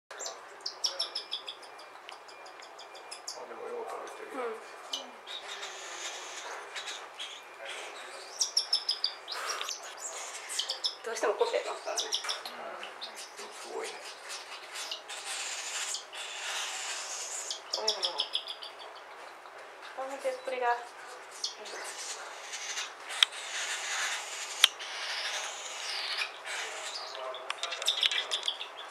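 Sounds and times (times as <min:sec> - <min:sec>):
chick chirping calls: 0:00.1 - 0:28.9.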